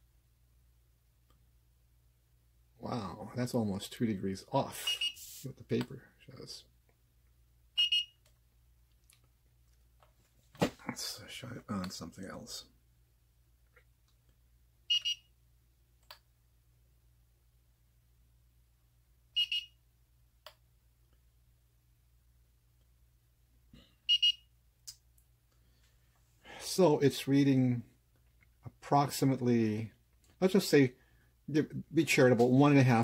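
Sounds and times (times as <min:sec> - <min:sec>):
thermometer electronic beep: 0:04.8 - 0:05.2, 0:07.8 - 0:08.2, 0:14.9 - 0:15.3, 0:19.4 - 0:19.8, 0:24.1 - 0:24.5.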